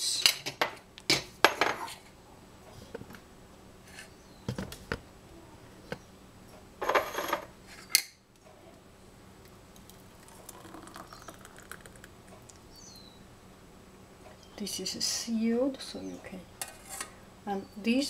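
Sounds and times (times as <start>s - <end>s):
faint spoon scraping: 16.6s - 17.2s.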